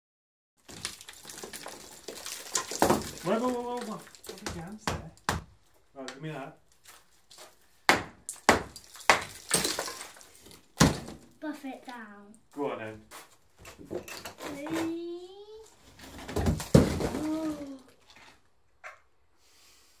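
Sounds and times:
brick and mortar breaking apart: 0.6 - 5.3, 8.3 - 11.2, 16.1 - 17.9
knocks on brickwork: 7.9 - 9.8.

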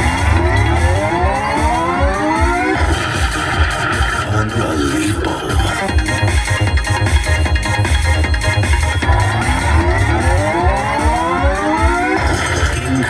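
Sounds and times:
rising sweep of tones: 0.0 - 4.3, 7.3 - 13.0
slot machine win music: 0.0 - 13.0
steady high tone: 0.0 - 13.0.

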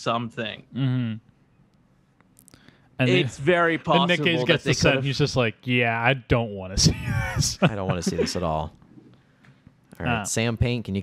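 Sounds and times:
person murmuring: 6.8 - 8.4.

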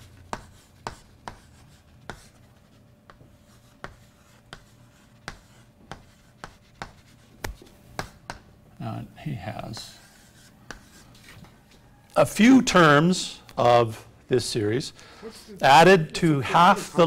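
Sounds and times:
chalk scratching strokes: 0.0 - 8.3, 9.7 - 11.5
chalk tapping on blackboard: 0.2 - 8.5, 9.8 - 11.3.

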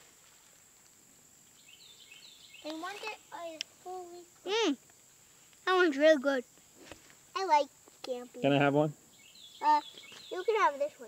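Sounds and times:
steady high hiss: 0.0 - 11.0
faint bird chirps: 1.5 - 4.8, 8.4 - 11.0.

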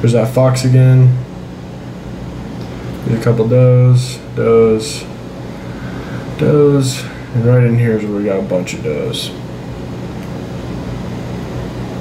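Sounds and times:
man speaking: 0.0 - 1.3, 3.0 - 5.2, 6.4 - 9.4
room hum: 0.0 - 12.0.

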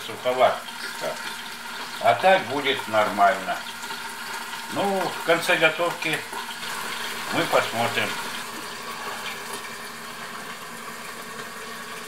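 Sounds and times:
sausages sizzling in frying pan: 0.0 - 12.0.

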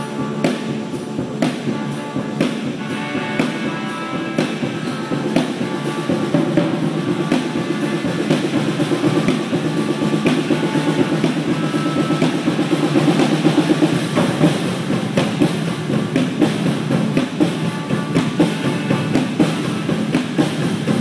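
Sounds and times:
cymbal strokes: 0.0 - 21.0
fast drum roll: 0.0 - 21.0.

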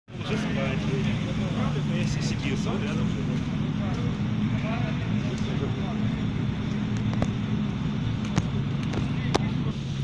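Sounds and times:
fire engine motor droning: 0.1 - 10.0
people talking: 0.1 - 10.0.

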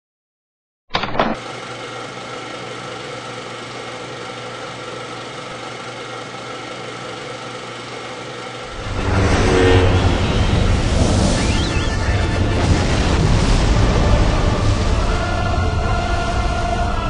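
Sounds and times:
steady hum: 3.3 - 17.0
deep rumble: 8.7 - 17.0
loud film soundtrack music: 8.7 - 17.0.

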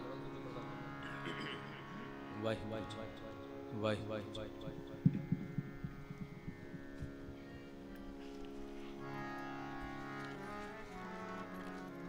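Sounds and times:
harmonium drone: 0.0 - 12.0
soft low thumps of tabla drums: 4.3 - 11.9.

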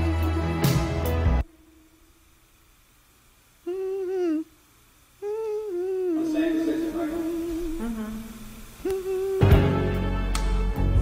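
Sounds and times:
person humming slow melody: 3.6 - 11.0.

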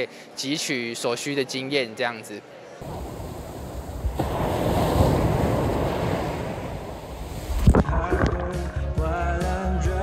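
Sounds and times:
sea surf washing up a beach: 2.8 - 7.8.

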